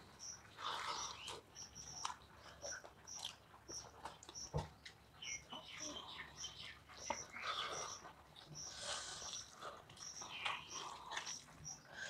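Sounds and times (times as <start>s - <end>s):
fingers squishing rice on plates: 0.2s - 12.0s
wet chewing and lip smacking: 0.4s - 5.5s, 7.0s - 12.0s.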